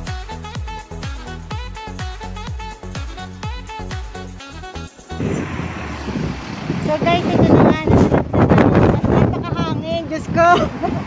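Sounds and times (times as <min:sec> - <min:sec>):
music: 0:00.0 - 0:05.4
steady rushing noise: 0:04.9 - 0:11.0
woman's voice: 0:06.8 - 0:11.0.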